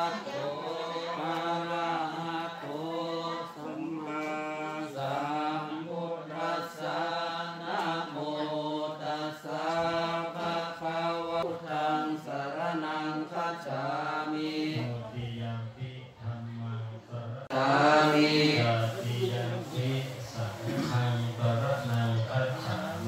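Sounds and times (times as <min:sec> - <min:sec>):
monks chanting together: 0:00.0 - 0:23.0.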